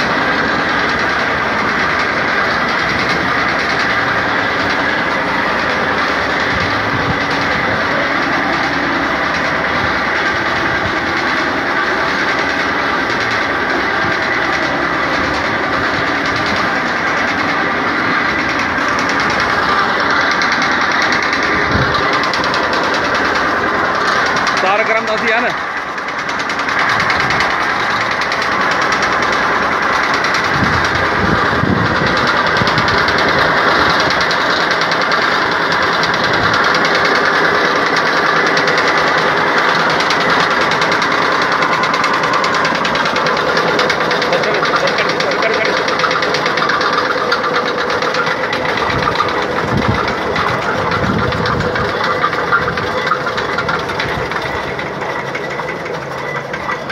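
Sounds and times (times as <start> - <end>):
generator machine clattering: 0.0 - 56.9.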